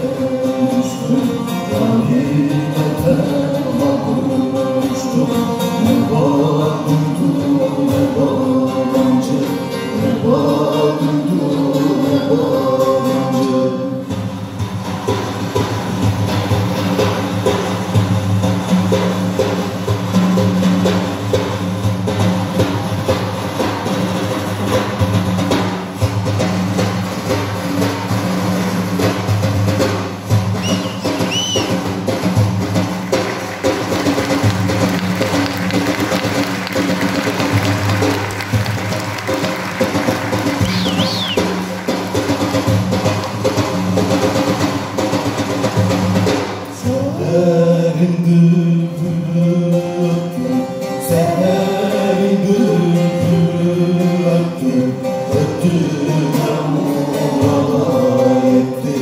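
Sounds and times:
frame drums playing: 0.0 - 59.0.

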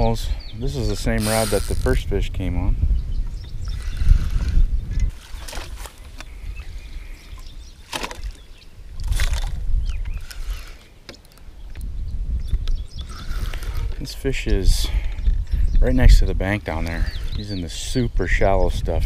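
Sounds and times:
water splashing and sloshing: 5.0 - 11.4.

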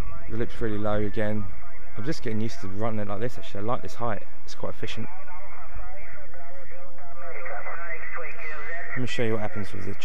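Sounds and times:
radio band noise hiss: 0.3 - 5.2, 7.2 - 10.0.

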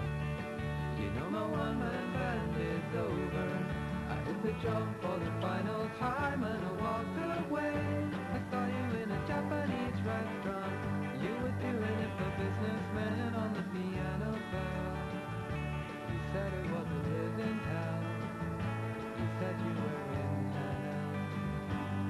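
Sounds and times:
bass line: 0.0 - 22.0
guitar: 0.0 - 22.0.

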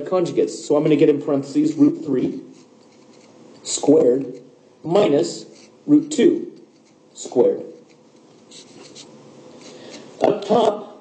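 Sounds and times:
stylus scratching on tablet screen: 2.3 - 3.7, 5.4 - 10.1.

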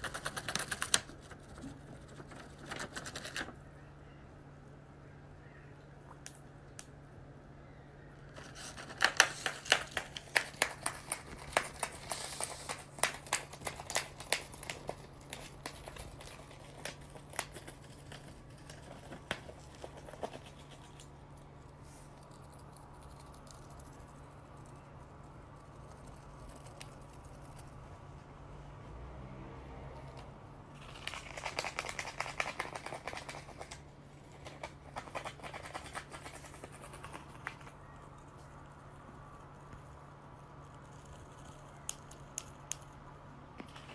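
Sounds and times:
bird tearing paper with beak: 0.0 - 3.6, 8.4 - 21.1, 30.8 - 37.8.

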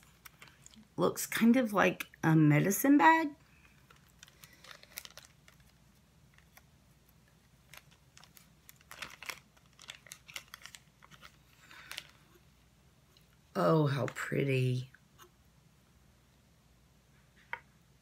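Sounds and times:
plastic bag crinkling: 3.4 - 12.5.

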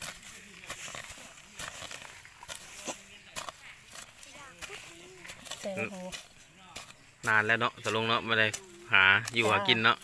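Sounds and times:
metal blade chopping into dry soil: 0.0 - 9.7
loose dirt scattering: 0.0 - 10.0.

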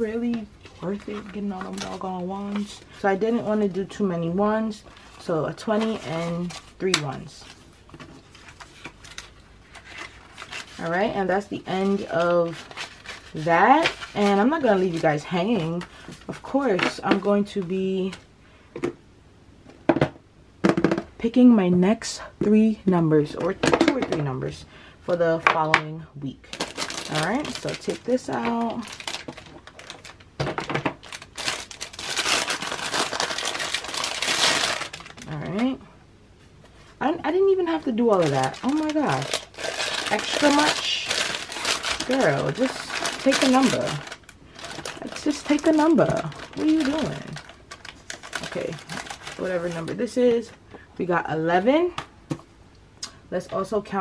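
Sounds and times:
plastic wrapping crinkling: 0.0 - 18.2, 26.4 - 35.8, 37.4 - 50.6.

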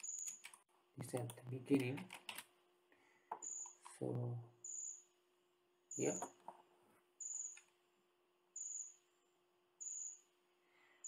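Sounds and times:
high-pitched chirp: 4.6 - 5.1, 7.2 - 7.7, 8.6 - 9.0, 9.8 - 10.3.

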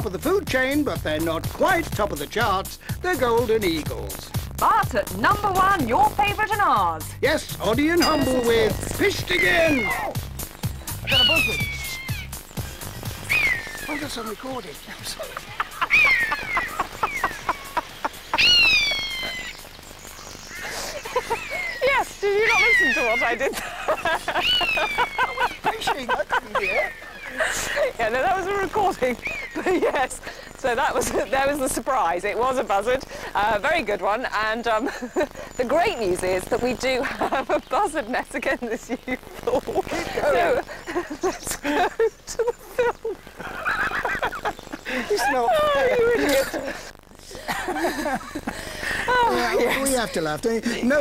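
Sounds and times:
buzzard mewing call: 8.0 - 19.8, 20.4 - 30.0
people laughing: 13.4 - 19.6, 20.6 - 31.5, 36.9 - 37.7, 38.6 - 51.0.

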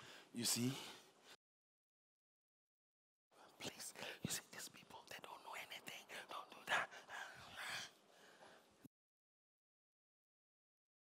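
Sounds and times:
man whispering: 0.3 - 1.2, 3.3 - 7.9.

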